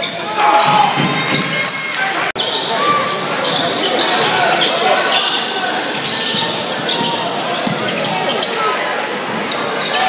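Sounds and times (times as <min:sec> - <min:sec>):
crowd voices echoing: 0:00.0 - 0:10.0
sneaker squeaks: 0:02.4 - 0:10.0.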